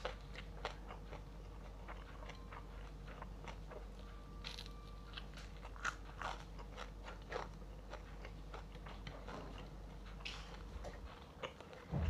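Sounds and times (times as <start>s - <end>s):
crunchy chewing: 0.0s - 12.0s.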